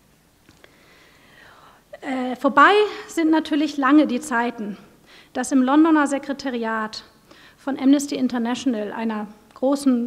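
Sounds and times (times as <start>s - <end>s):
soft breath: 0.6s - 1.9s, 5.0s - 5.4s, 7.2s - 7.6s.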